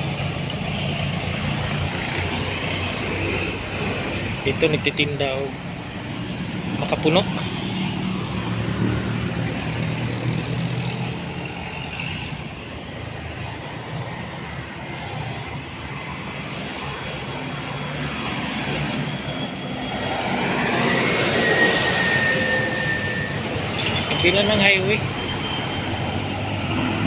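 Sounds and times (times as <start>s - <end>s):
vehicle passing: 1.3s - 27.0s
thin high whine: 19.1s - 24.3s.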